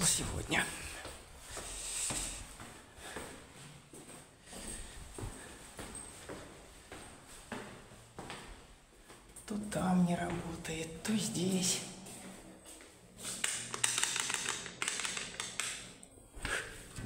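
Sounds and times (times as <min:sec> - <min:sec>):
shuffling on stairs: 0:00.9 - 0:09.5
footsteps walking up stairs: 0:00.9 - 0:13.4.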